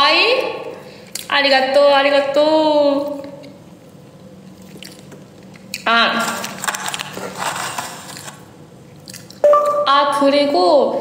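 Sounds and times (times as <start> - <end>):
person chewing food: 4.4 - 7.2, 8.0 - 9.8.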